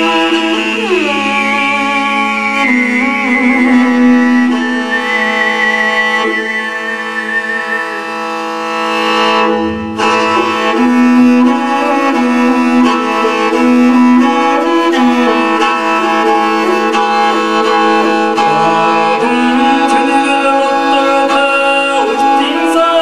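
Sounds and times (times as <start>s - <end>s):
throat singing drone with overtones: 0.0s - 22.8s
high whistling overtone: 0.6s - 12.9s.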